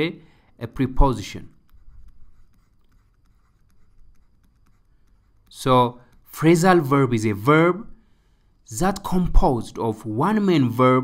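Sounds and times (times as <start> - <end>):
low steady hum: 0.0 - 10.3
stylus scratching and tapping screen: 1.0 - 7.4.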